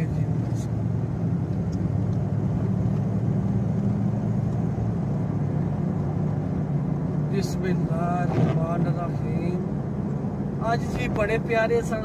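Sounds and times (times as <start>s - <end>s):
car engine and tyre drone: 0.0s - 12.0s.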